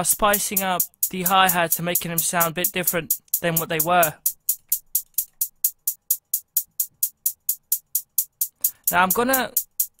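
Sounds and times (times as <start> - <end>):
drum machine hi-hat ticks: 0.0 - 10.0.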